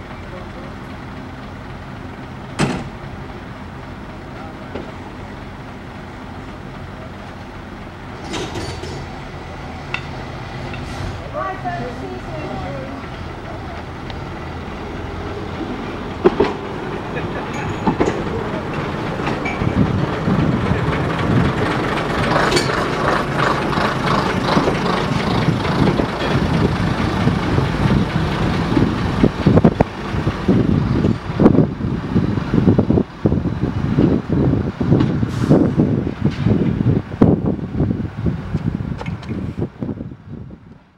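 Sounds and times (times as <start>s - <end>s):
diesel engines running: 0.0s - 40.9s
train wheels knocking and clattering: 0.8s - 3.3s, 4.6s - 5.2s, 7.9s - 10.9s, 14.9s - 31.6s.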